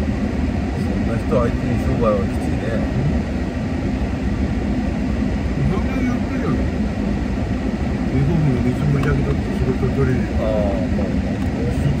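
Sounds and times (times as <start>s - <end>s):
car cabin rumble: 0.0s - 12.0s.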